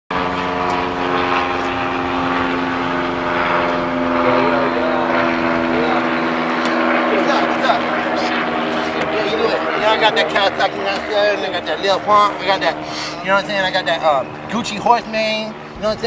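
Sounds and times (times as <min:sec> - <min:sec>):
faint voices: 0:00.2 - 0:16.0
idling vehicle engine hum: 0:00.2 - 0:16.0.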